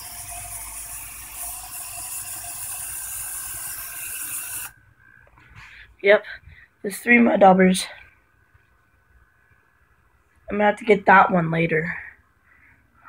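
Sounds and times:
aerosol spray hissing: 0.0 - 4.8.

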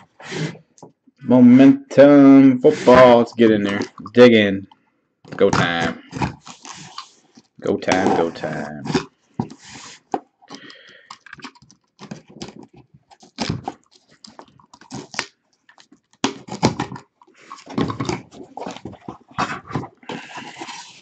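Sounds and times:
cardboard scraping and tearing: 5.6 - 10.1, 12.0 - 15.3, 16.2 - 21.0.

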